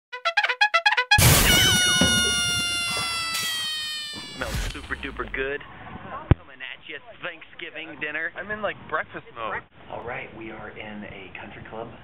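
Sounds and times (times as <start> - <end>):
brass note sliding down in pitch: 0.1 - 3.4.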